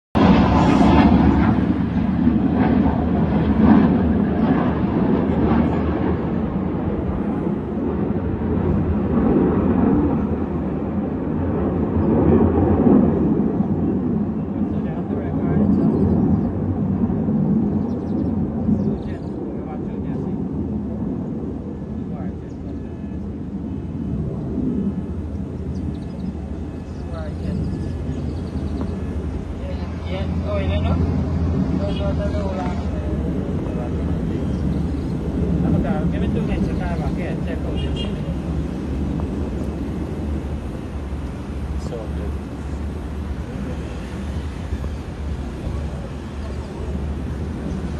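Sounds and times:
fighter jets flying past: 0.2s - 47.9s.

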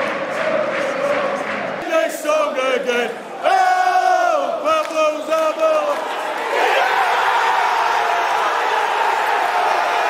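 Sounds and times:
crowd chanting: 0.0s - 10.0s.

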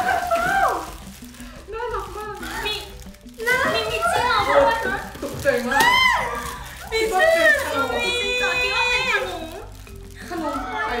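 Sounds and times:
women exclaiming and talking: 0.0s - 0.9s, 1.6s - 11.0s
background music: 0.0s - 11.0s.

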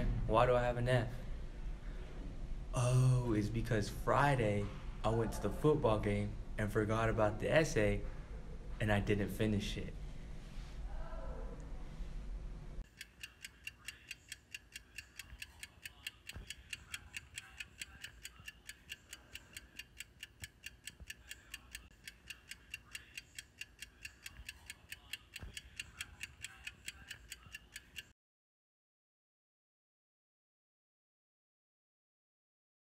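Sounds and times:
fast clock ticking: 12.8s - 28.1s.

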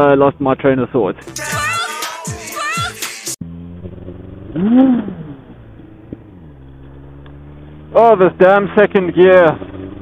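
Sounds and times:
motorcycle engine running: 3.4s - 10.0s.

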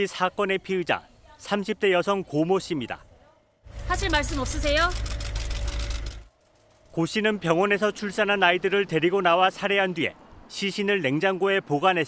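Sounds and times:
camera shutters clicking rapidly: 4.0s - 6.3s.

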